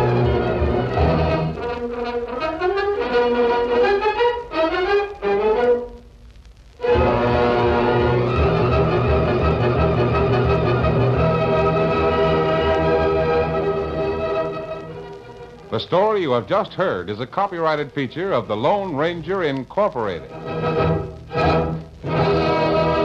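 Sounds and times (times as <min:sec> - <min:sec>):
orchestral music with brass: 0:00.0 - 0:05.7, 0:06.9 - 0:15.0, 0:20.4 - 0:23.0.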